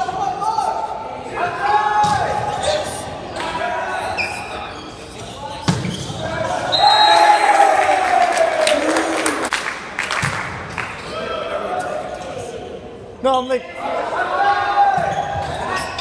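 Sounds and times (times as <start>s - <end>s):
players shouting: 6.3s - 9.5s.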